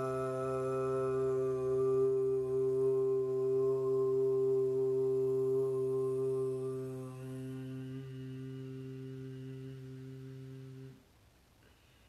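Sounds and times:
woman humming a chant: 0.0s - 11.0s.

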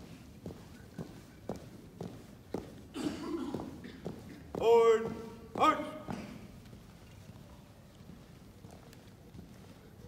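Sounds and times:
marching footsteps on carpet: 0.0s - 10.0s.

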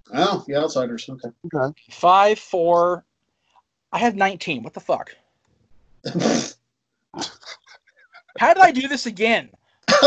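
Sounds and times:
breathy voice burst: 6.1s - 6.5s.

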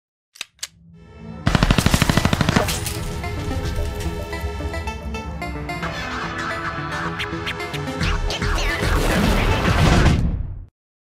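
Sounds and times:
automatic gunfire: 1.5s - 2.9s.

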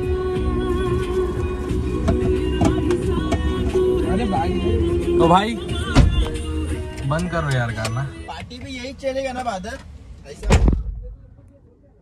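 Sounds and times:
car door slamming: 5.7s - 6.6s, 10.4s - 11.2s.

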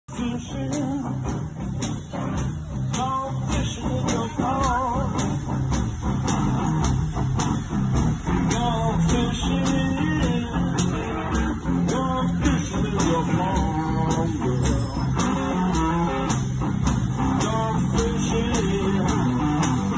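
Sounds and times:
electric guitar: 0.1s - 19.9s
steady drum beat: 0.1s - 19.9s.

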